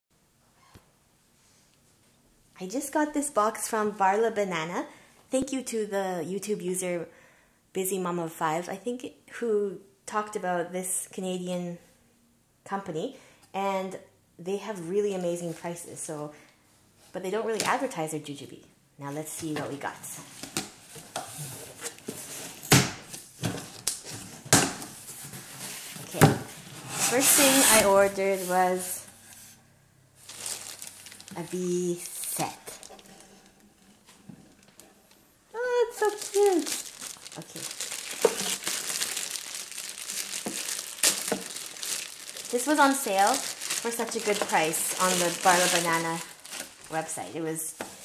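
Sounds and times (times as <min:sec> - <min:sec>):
cardboard crackles and scrapes: 0:25.0 - 0:29.6, 0:35.9 - 0:48.0
cardboard tearing: 0:27.0 - 0:28.6, 0:36.0 - 0:46.9
plastic bag crinkling: 0:30.2 - 0:47.3.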